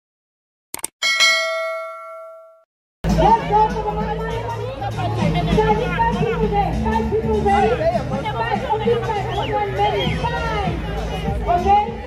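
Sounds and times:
crowd talking and calling out: 3.0 - 12.0
music playing: 3.0 - 12.0.

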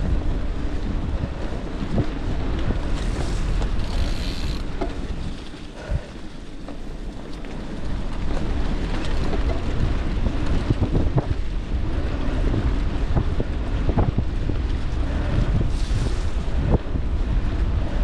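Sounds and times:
bike rattling over bumps: 0.0 - 18.0
tyre rumble on dirt trail: 0.0 - 18.0
wind buffeting microphone: 0.0 - 18.0.

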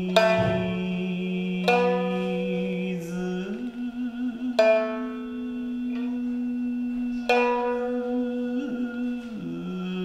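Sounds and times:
man singing long note: 0.0 - 10.0
shamisen pluck: 0.0 - 10.0.

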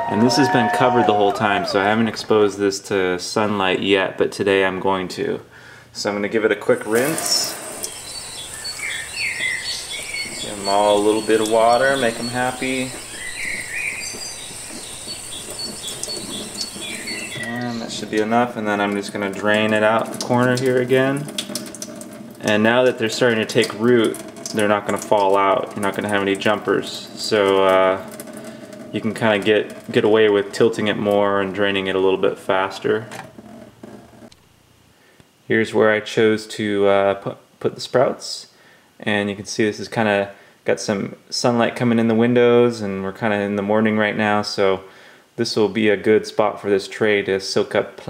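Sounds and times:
tap water running into tray: 6.8 - 31.3.

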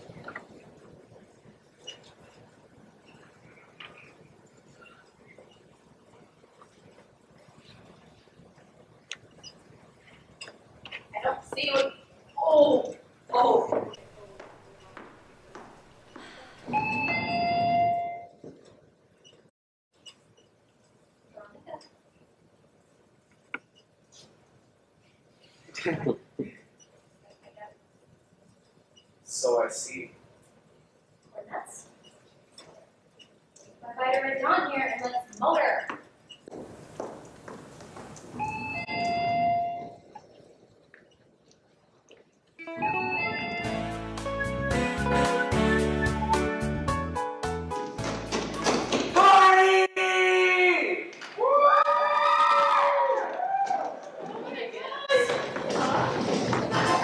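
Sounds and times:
keyboard music: 42.6 - 48.7.

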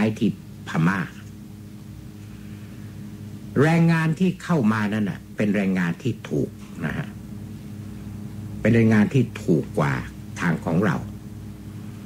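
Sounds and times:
man speaking: 0.0 - 1.3, 3.5 - 7.2, 8.6 - 11.1
steady low hum: 0.0 - 12.0.

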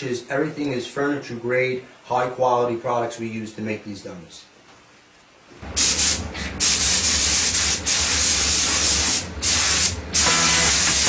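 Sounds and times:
spray gun hissing: 5.8 - 11.0.

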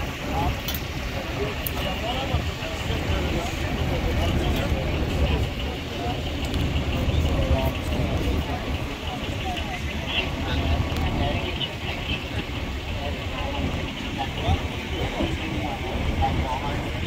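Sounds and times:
faint voices talking: 0.0 - 17.0
vehicle engines idling: 0.0 - 17.0.

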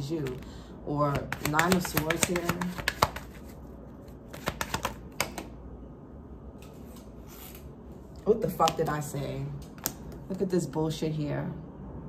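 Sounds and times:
low steady hum: 0.0 - 12.0
cards being shuffled: 1.1 - 5.5, 6.6 - 7.7.

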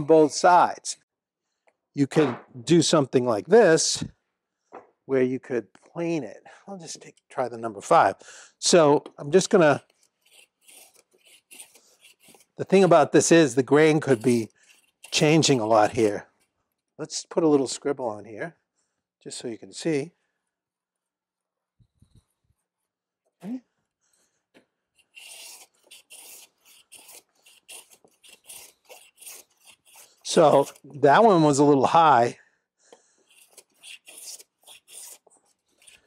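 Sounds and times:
hand plane strokes on wood: 9.8 - 16.1, 25.0 - 31.2.

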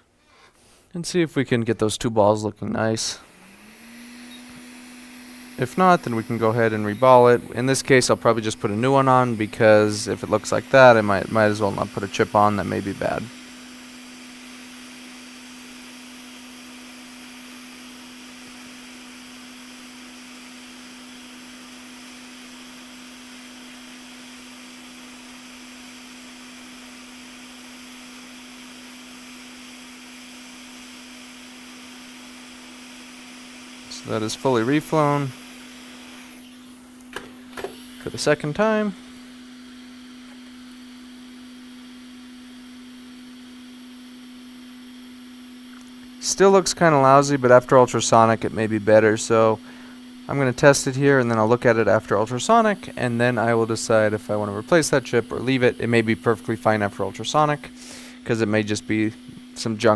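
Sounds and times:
hot air blower hum: 2.6 - 59.9.

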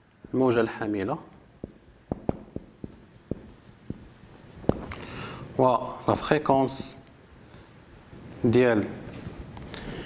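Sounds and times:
marker writing on a whiteboard: 0.0 - 5.0.

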